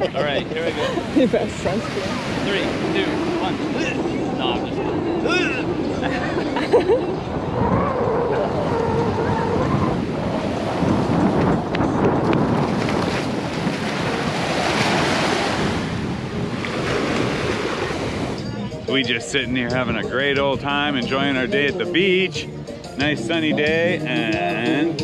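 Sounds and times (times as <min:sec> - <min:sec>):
surf washing onto a beach: 0:00.0 - 0:18.4
wind rushing over microphone: 0:00.0 - 0:23.4.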